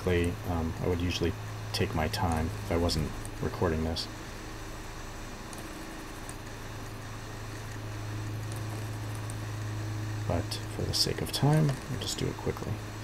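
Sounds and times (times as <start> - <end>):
low electrical hum: 0.0 - 13.0.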